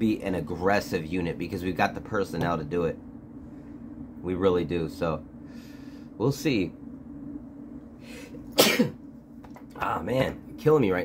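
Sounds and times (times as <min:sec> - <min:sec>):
man coughing: 0:08.5 - 0:09.0.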